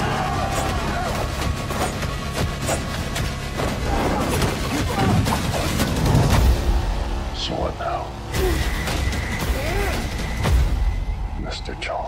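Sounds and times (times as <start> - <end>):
men shouting: 0.0 - 2.0
dramatic trailer music: 0.0 - 12.0.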